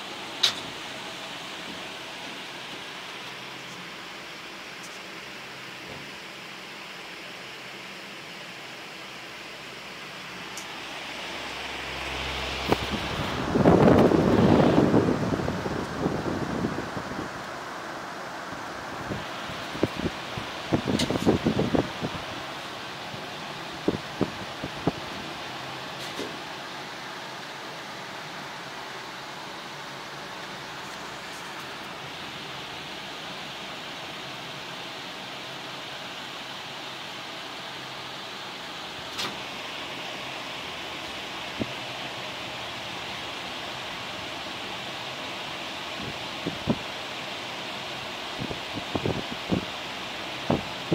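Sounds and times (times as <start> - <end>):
steady hiss: 0.0 - 50.9.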